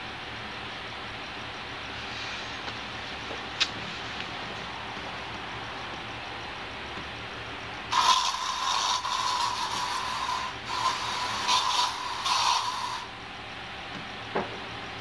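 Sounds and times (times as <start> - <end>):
small device high whine: 0.0 - 13.5
rattling hiss: 7.3 - 13.2.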